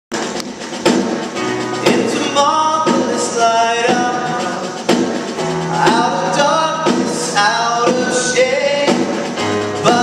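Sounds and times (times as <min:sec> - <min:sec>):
live band playing: 0:00.1 - 0:10.0.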